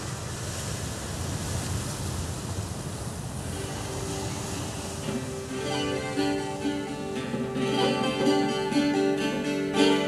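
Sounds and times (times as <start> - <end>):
rushing wash of noise: 0.0 - 10.0.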